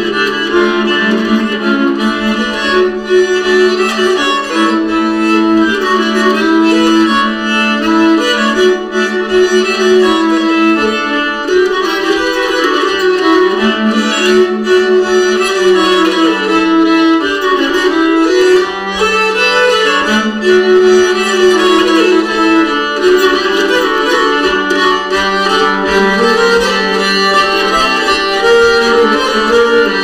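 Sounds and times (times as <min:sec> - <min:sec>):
bowed keyed fiddles duet: 0:00.0 - 0:30.0.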